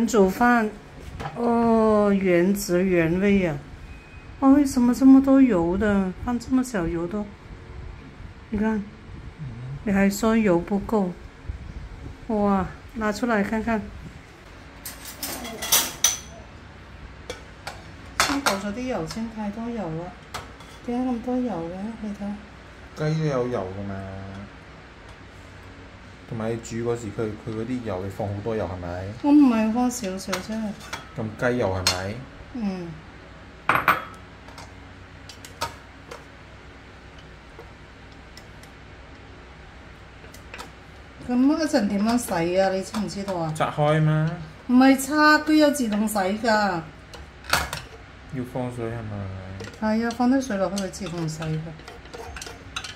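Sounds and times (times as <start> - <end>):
faint low hum: 0.0 - 52.9
metal bowl clattering: 49.6 - 52.9.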